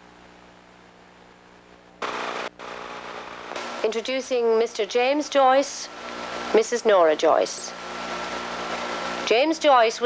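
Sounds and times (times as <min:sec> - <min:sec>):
old recording hum and hiss: 0:00.0 - 0:10.0
loud burst of noise: 0:02.0 - 0:09.4.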